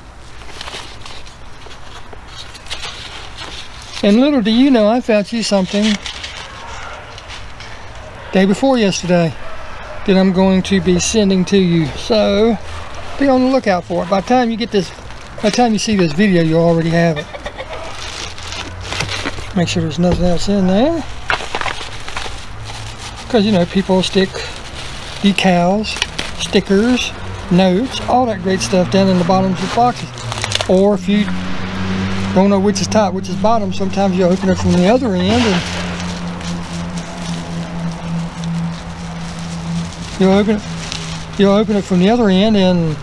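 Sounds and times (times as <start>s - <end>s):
crackling rustles: 0.0s - 43.0s
cardboard box being rummaged: 17.5s - 27.1s, 34.4s - 42.5s.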